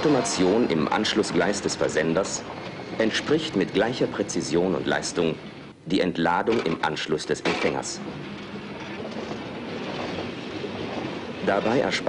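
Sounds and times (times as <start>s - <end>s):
freight train wheels rumbling: 0.0s - 12.0s.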